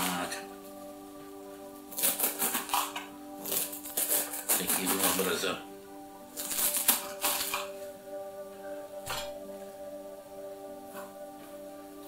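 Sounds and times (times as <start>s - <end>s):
instrumental background music: 0.0s - 12.0s
knife slicing cabbage on board: 1.9s - 5.3s.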